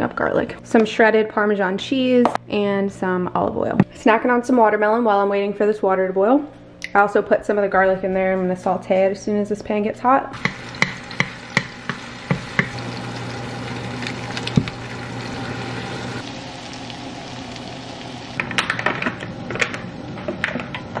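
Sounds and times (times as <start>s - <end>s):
spatula stirring and tapping pan: 10.4s - 12.8s
butter and garlic sizzling: 10.4s - 18.8s.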